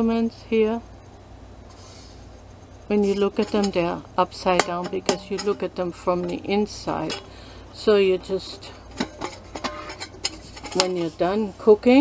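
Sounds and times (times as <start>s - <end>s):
metal camping pot clicking: 3.0s - 11.2s.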